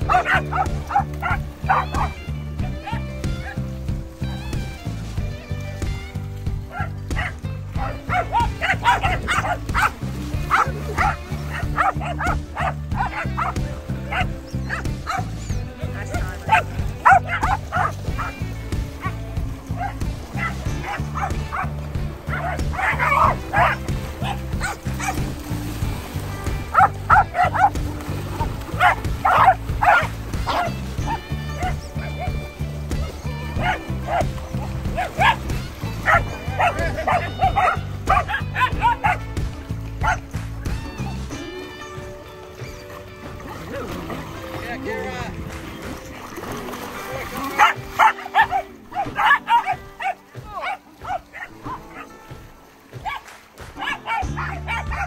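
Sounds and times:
dogs barking: 0.0 - 4.2, 6.4 - 55.0
background music: 0.0 - 55.0.

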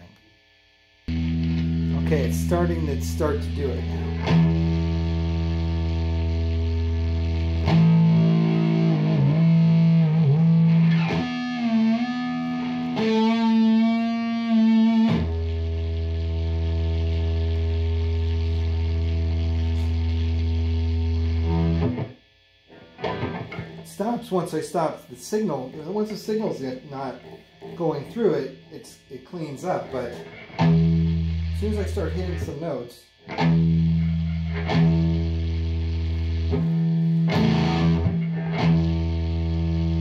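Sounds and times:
distorted electric guitar: 0.0 - 40.0.

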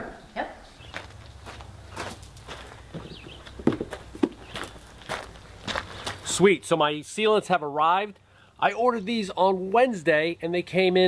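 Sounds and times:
footsteps on gravel: 0.8 - 6.4.

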